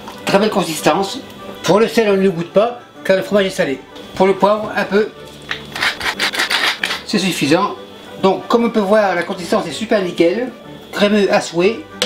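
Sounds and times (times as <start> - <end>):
pepper mill grinding: 5.3 - 7.1.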